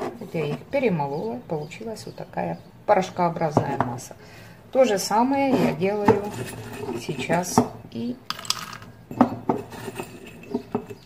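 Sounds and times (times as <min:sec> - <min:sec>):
peel pieces clinking on metal bowl: 0:08.3 - 0:09.2.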